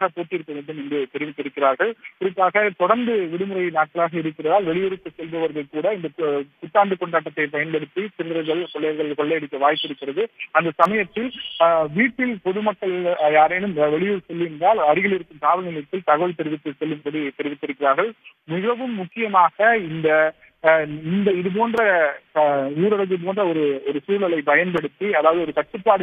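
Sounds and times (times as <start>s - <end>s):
man talking over telephone: 0.0s - 26.0s.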